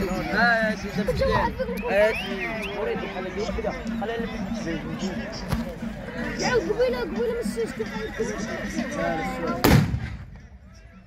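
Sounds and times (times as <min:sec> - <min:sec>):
musket volley blast: 0:09.6 - 0:10.5.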